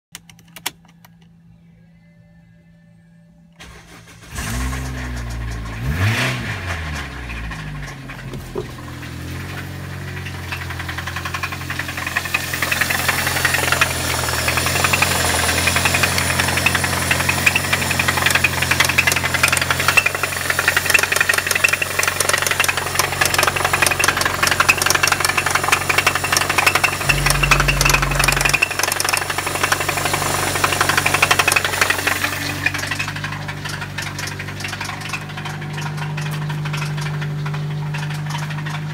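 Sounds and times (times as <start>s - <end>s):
engine knocking rattle: 4.9s - 38.9s
car engine idling: 6.8s - 38.9s.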